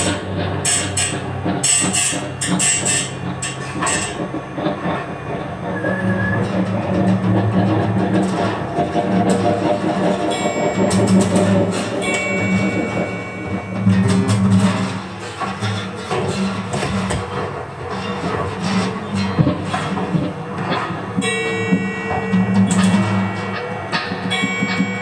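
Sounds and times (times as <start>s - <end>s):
low drone: 0.0s - 25.0s
high metallic ringing tones: 7.8s - 16.5s, 21.1s - 25.0s.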